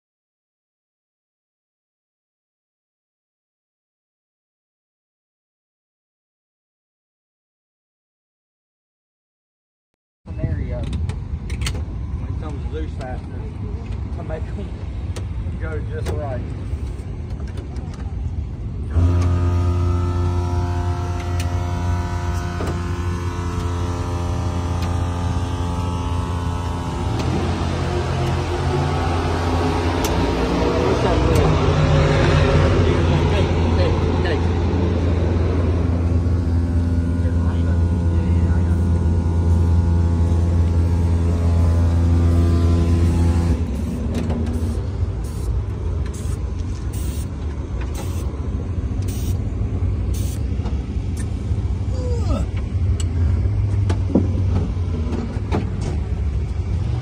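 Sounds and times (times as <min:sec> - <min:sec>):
engine running steadily: 0:10.3 - 0:57.0.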